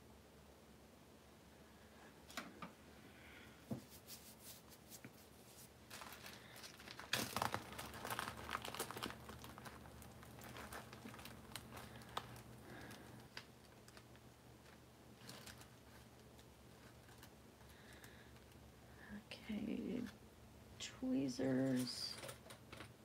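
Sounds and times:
plastic bag crinkling: 0:03.9 - 0:18.6.

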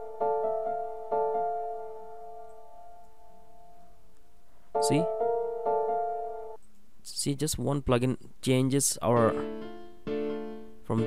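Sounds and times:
sustained piano chord: 0:04.8 - 0:06.6.

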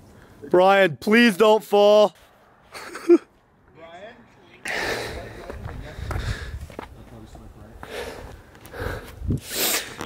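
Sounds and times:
wind noise on microphone: 0:05.4 - 0:07.0, 0:08.2 - 0:10.0.

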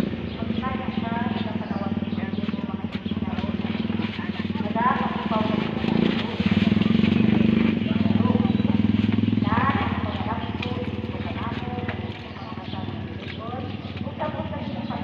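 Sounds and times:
motorcycle engine running: 0:00.0 - 0:15.0
people talking: 0:00.0 - 0:15.0.

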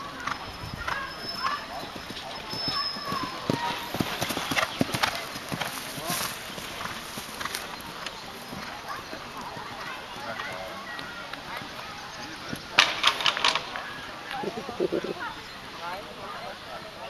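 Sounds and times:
horse hoofbeats on grass: 0:00.2 - 0:13.1.

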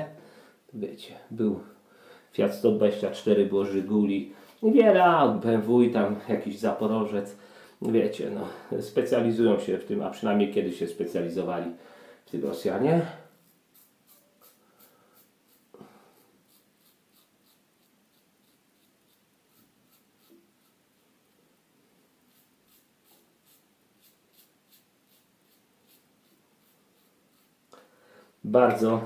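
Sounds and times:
razor scratching stubble: 0:13.4 - 0:21.0, 0:22.3 - 0:27.7.

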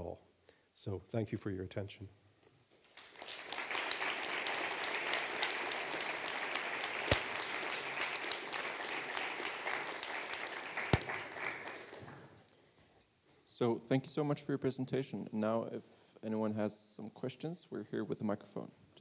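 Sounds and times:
audience applauding: 0:02.9 - 0:12.4.

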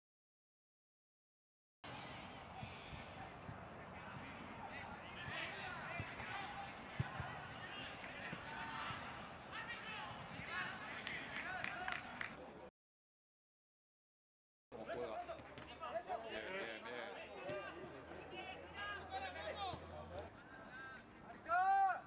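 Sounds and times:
players shouting: 0:01.9 - 0:12.2.

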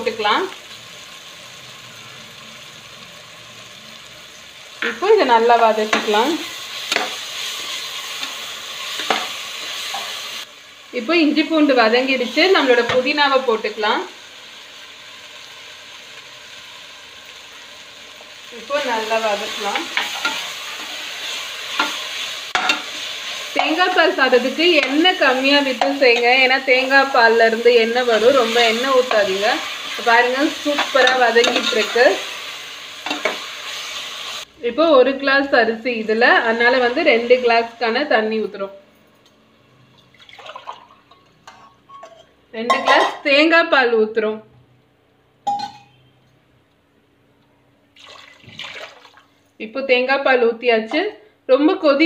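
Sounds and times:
vegetables sizzling in oil: 0:00.0 - 0:38.7.

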